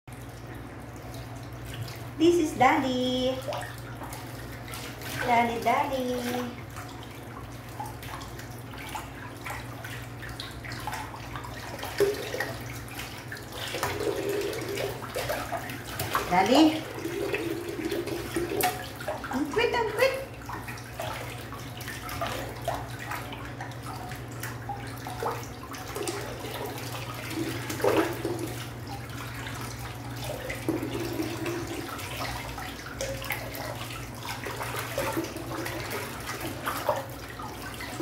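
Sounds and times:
water sloshing in a sink: 0:00.1 - 0:38.0.

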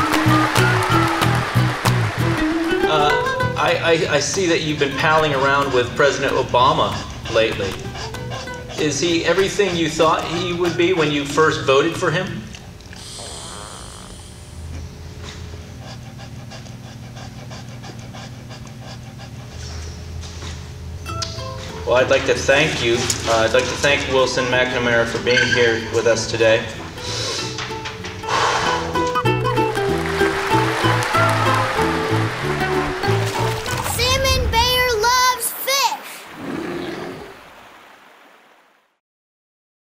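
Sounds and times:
dog panting quickly: 0:03.6 - 0:11.8, 0:14.6 - 0:20.7, 0:22.7 - 0:27.7
steady low hum: 0:05.8 - 0:25.4.

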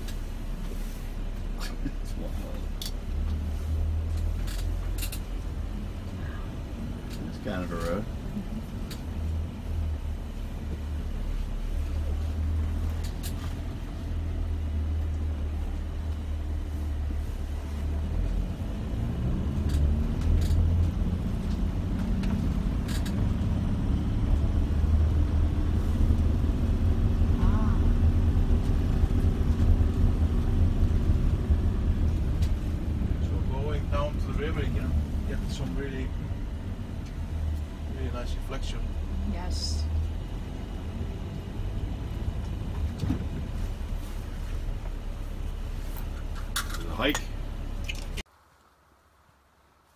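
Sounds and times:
vehicle driving on rough road: 0:00.0 - 0:49.9.

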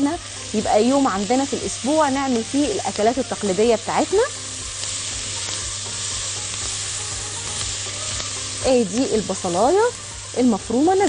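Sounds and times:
onion sizzling in a pot: 0:00.0 - 0:11.0.

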